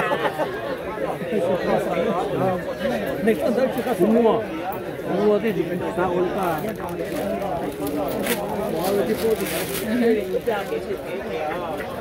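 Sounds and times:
overlapping conversational chatter: 0.0 - 12.0.

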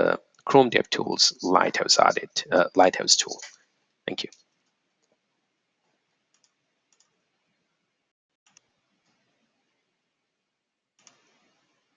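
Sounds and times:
computer mouse clicks: 6.3 - 7.2, 8.5 - 8.7, 11.0 - 11.4.

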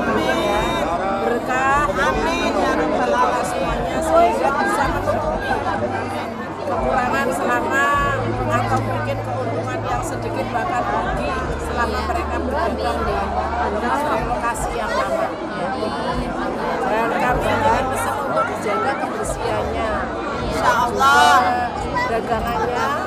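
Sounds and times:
people talking: 0.0 - 23.0.

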